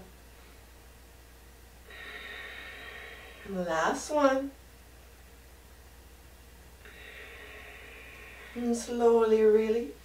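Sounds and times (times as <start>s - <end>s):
long steady breath: 1.8s - 4.1s, 6.8s - 9.6s.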